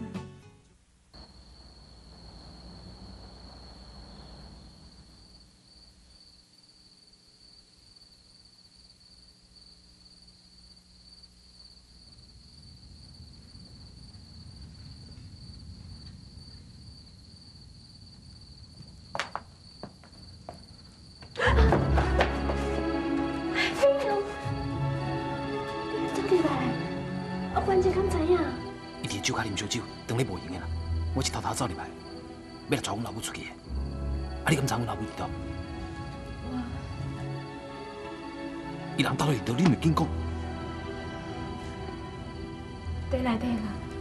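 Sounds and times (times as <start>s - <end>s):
faint low hum: 0.7s - 22.2s
crickets chirping: 0.8s - 44.0s
soft background music: 21.5s - 44.0s.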